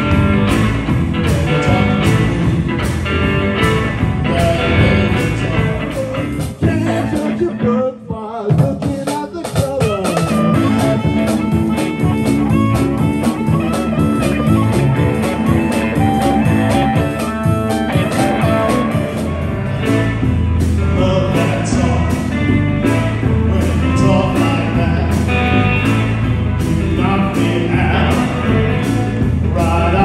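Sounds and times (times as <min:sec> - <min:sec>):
electric guitar bending notes: 0:00.0 - 0:08.2, 0:09.7 - 0:30.0
live blues band playing: 0:00.0 - 0:30.0.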